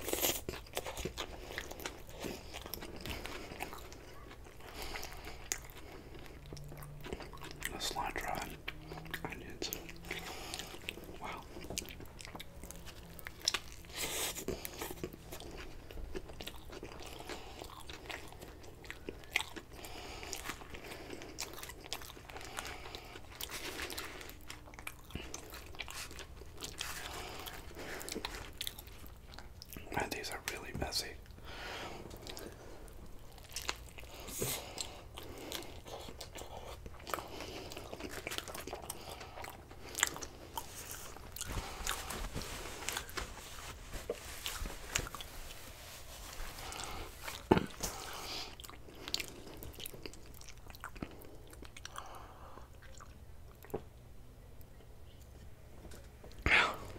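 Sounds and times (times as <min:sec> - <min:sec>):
biting and chewing: 0:00.0 - 0:30.0, 0:31.8 - 0:54.0.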